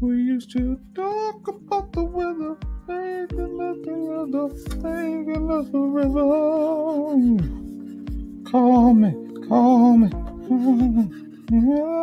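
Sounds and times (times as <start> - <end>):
steady beat: 0.0 - 12.0.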